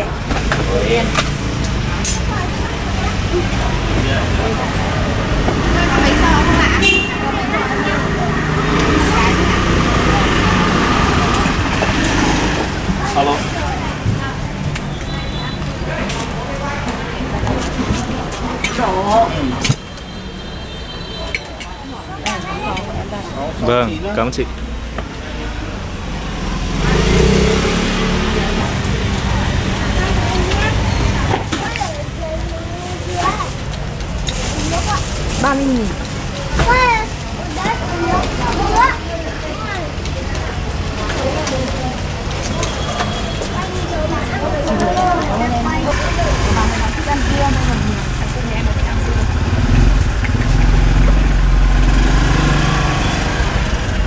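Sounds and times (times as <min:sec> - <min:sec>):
people talking: 0:00.0 - 0:19.8, 0:20.4 - 0:24.6, 0:25.2 - 0:54.0
road traffic hum: 0:00.0 - 0:54.0
motorbike engine running: 0:26.0 - 0:31.5, 0:32.2 - 0:54.0.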